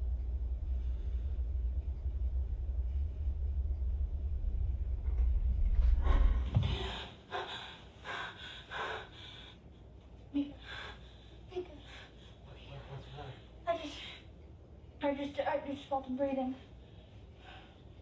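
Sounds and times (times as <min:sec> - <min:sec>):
deep low rumble: 0:00.0 - 0:07.3
heavy breaths: 0:05.8 - 0:14.3, 0:16.7 - 0:18.0.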